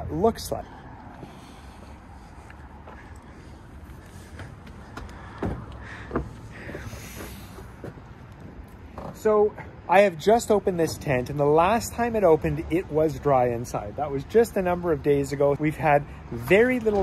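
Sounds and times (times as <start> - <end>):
outdoor background noise: 0.0 - 17.0.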